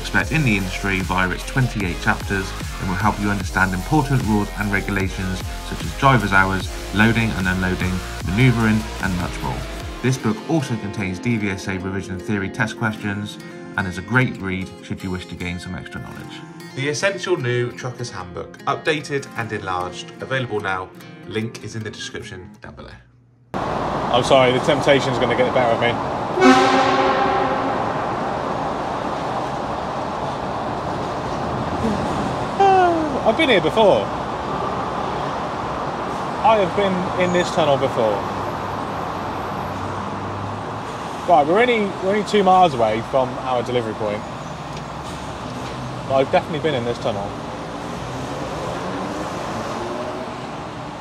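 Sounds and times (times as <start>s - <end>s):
lorry road and engine rumble: 0.0s - 11.3s, 23.5s - 51.0s
air horn echo: 26.3s - 28.7s.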